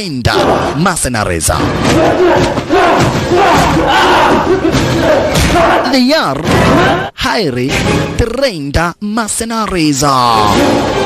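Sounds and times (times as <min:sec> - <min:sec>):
men shouting and yelling: 0:00.2 - 0:07.2.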